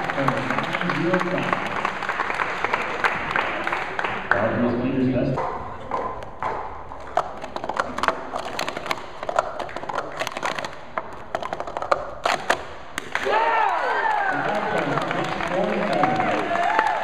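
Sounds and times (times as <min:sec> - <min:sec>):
plastic cups clicking and clacking: 0:05.3 - 0:13.3, 0:14.4 - 0:16.4
people shouting and cheering: 0:13.1 - 0:17.0.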